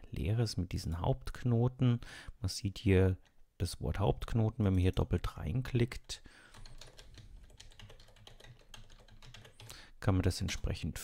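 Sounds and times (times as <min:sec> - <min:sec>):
computer keyboard typing: 0:06.0 - 0:09.8.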